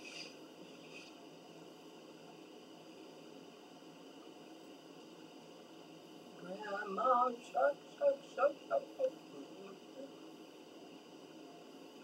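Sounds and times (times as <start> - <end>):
faint steady hiss: 0.0 - 12.0
woman mumbling: 6.4 - 10.1.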